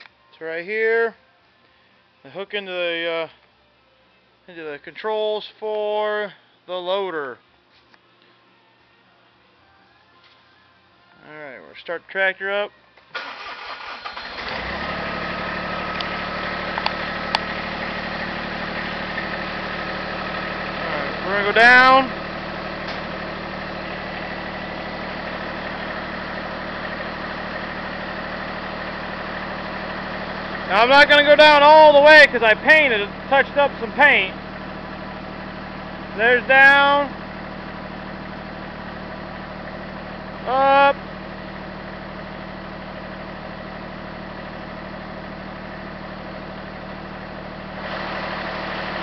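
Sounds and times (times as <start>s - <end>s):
tractor engine cranking: 13.2s - 23.8s
tractor engine idling: 13.2s - 49.0s.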